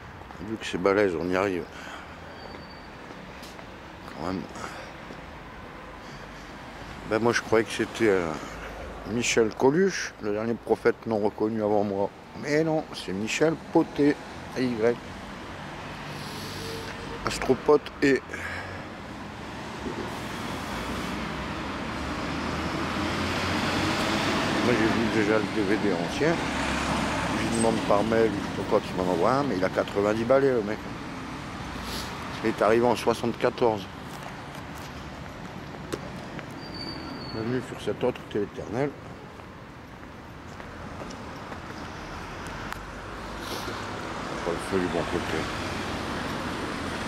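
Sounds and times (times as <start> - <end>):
outdoor street noise: 0.0 - 47.0
vehicle engine and tyre noise: 0.0 - 47.0.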